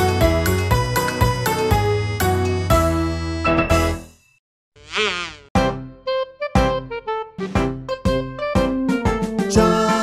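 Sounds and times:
cartoon insect buzz: 4.8s - 5.6s
children's music: 5.6s - 10.0s.

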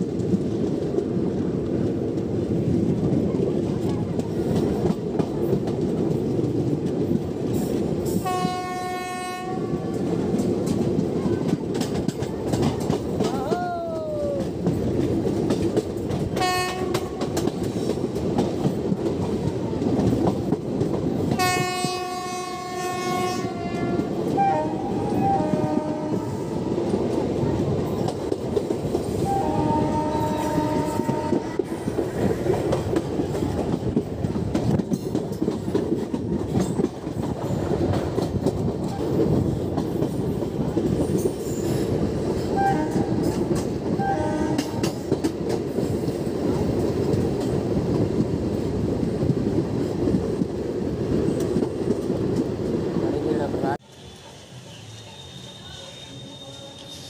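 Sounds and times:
train wheels on rails: 0.0s - 57.0s
train horn: 8.2s - 10.0s, 16.4s - 17.4s, 21.3s - 26.8s, 29.2s - 31.9s, 42.5s - 43.4s, 44.0s - 45.0s, 53.9s - 57.0s.

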